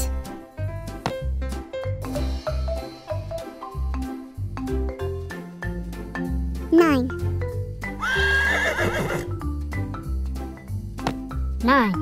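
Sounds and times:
light children's music: 0.0 - 12.0
horse neighing: 8.0 - 9.3.

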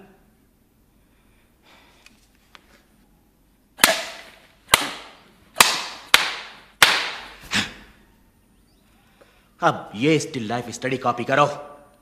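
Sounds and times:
sharp smacks on a fist: 3.8 - 7.4.

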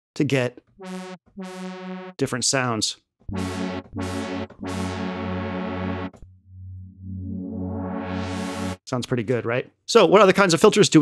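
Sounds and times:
filtered synthesizer notes: 0.8 - 2.2, 3.3 - 8.8
held synth bass: 0.8 - 2.2, 3.3 - 8.8.

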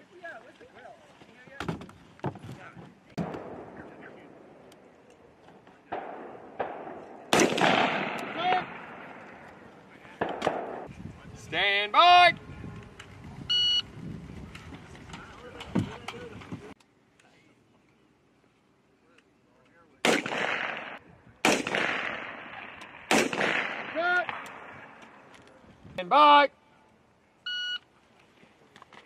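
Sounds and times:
shot timer beep: 13.5 - 13.8, 27.5 - 27.8.

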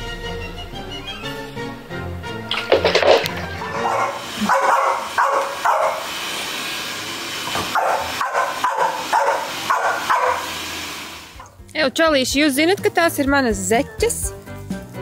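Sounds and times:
background music: 0.0 - 4.4, 11.4 - 15.0
small dog barking: 3.7 - 6.1, 7.7 - 10.5.

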